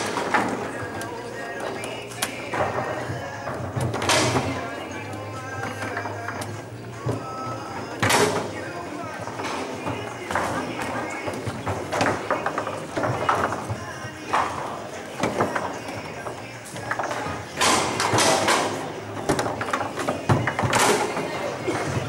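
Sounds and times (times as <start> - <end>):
background voices chattering: 0.0 - 22.0
foosball knocks and clacks: 1.8 - 8.6, 9.2 - 22.0.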